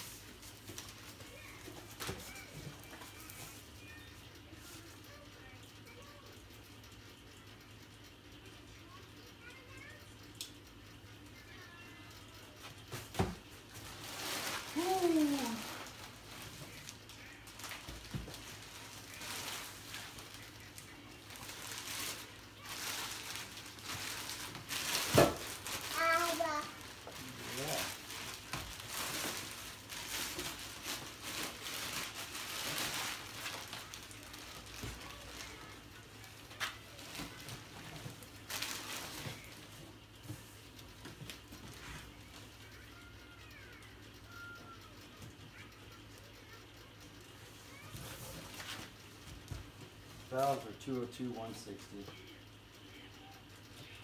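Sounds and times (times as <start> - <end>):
plastic bags crinkling: 13.9 - 16.1, 21.6 - 26.0, 27.6 - 33.7, 38.5 - 39.2.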